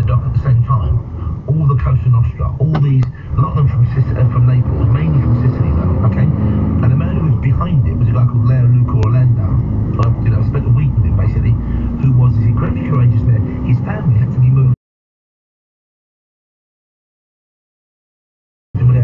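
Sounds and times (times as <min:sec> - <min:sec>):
lorry engine running: 0:00.0 - 0:14.8
muffled radio talk: 0:00.0 - 0:14.8, 0:18.8 - 0:19.0.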